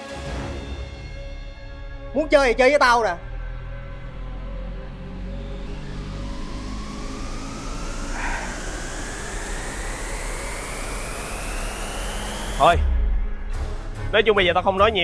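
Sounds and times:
low synth drone: 0.9 - 14.1
synth riser tone: 1.9 - 13.9
hiss swell: 3.3 - 12.8.

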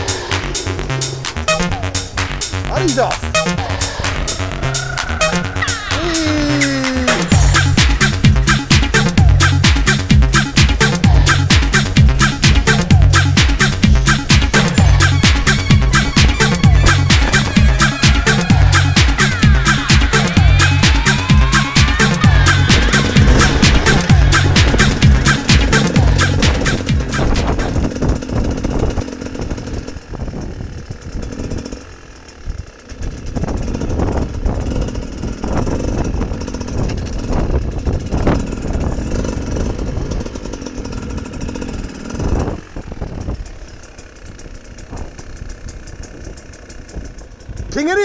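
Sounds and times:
dirt bike engine revving: 0.0 - 48.0
dance music with steady beat: 2.6 - 3.9, 5.2 - 27.5.

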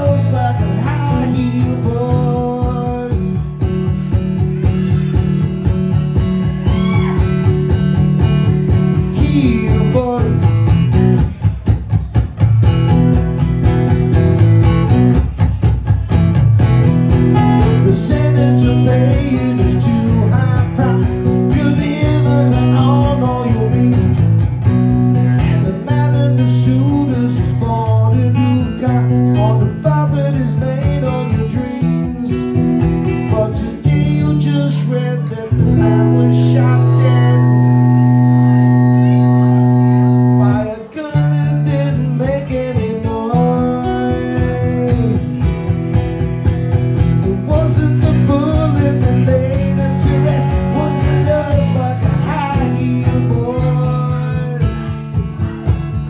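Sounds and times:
acoustic guitar bluesy riff: 0.0 - 56.0.

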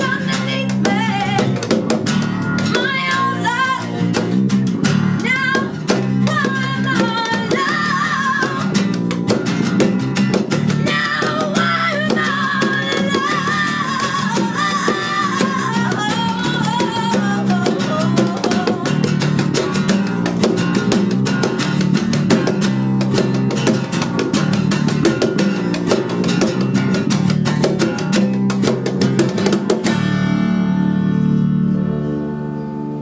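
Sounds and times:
acoustic guitars strummed: 0.0 - 33.0
person singing: 5.2 - 8.8, 10.8 - 19.2.

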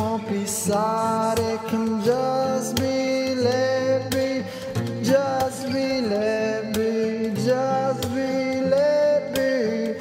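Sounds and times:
acoustic guitar strumming: 0.0 - 10.0
man singing long notes: 0.0 - 10.0.

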